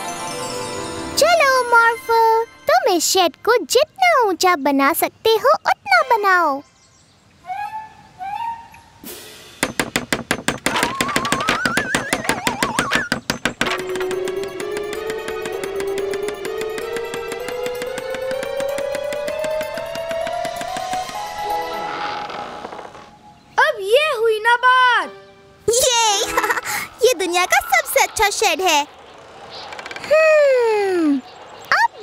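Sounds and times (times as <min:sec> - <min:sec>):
rapid hammering knocks: 0:09.6 - 0:21.7
wavering rising whistle: 0:10.8 - 0:13.1.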